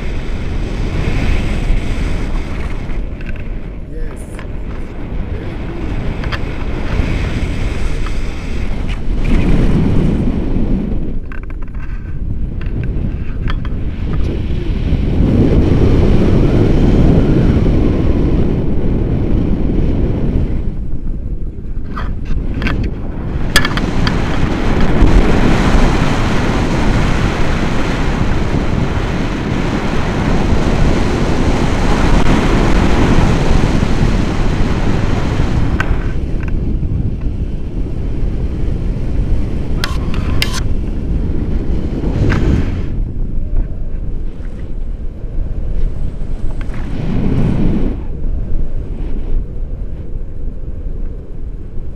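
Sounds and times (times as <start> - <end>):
wind buffeting microphone: 0.0 - 51.9.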